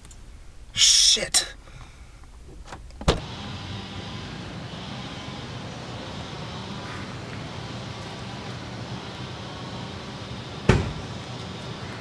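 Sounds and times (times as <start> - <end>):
car engine idling: 3.2 - 12.0.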